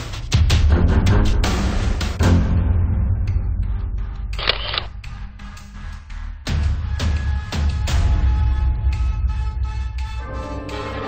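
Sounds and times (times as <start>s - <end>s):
low background music: 0.0s - 11.0s
camera shutter click: 4.4s - 4.9s.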